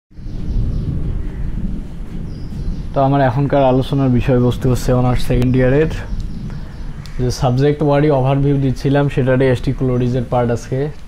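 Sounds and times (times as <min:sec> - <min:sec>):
low rumbling noise: 0:00.1 - 0:11.0.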